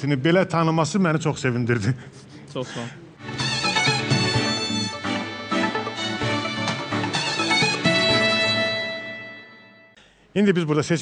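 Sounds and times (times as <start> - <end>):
quiz show theme music: 3.2 - 10.0.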